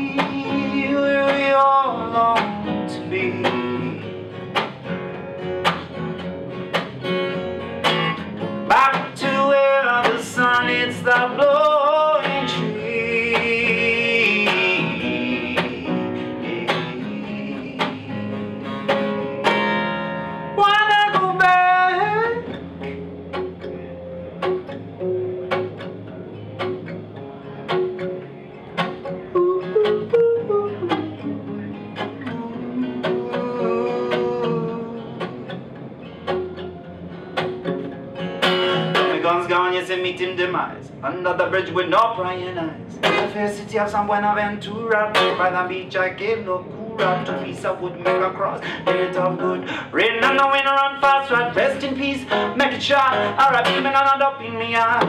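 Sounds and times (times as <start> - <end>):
person singing wordlessly: 0.0 - 4.2, 8.7 - 18.6, 20.6 - 22.5, 29.3 - 35.6, 41.0 - 55.0
acoustic guitar strummed and picked: 0.0 - 55.0.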